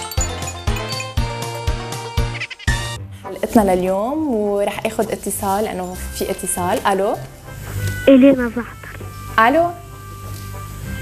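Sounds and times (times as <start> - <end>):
upbeat theme music: 0.0 - 3.2, 8.0 - 9.1
person speaking: 8.1 - 9.0.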